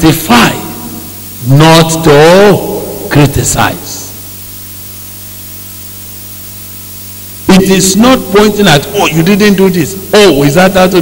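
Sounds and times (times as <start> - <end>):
low electrical hum: 0.0 - 11.0
steady hiss: 0.0 - 11.0.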